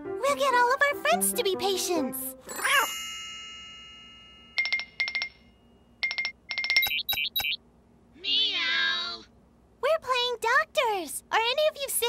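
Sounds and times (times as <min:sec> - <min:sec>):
short electronic beeps: 0:06.0 - 0:07.6
cartoon cat meowing: 0:08.2 - 0:09.3.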